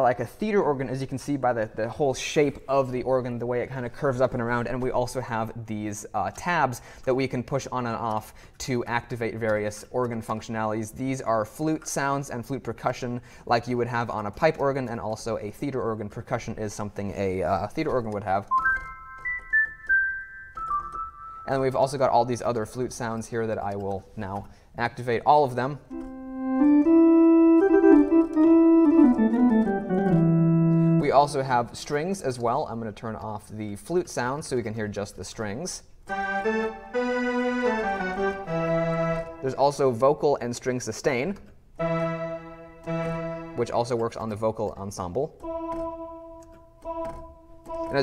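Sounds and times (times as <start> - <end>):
electronic organ melody: 18.4 - 21.7, 25.9 - 31.2, 36.1 - 39.5, 41.8 - 44.0, 45.4 - 48.0.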